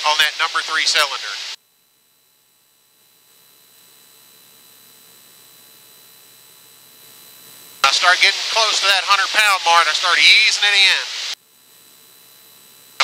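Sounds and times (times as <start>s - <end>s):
person speaking: 0.0s - 1.4s, 7.8s - 11.3s
headset hiss and hum: 0.0s - 13.0s.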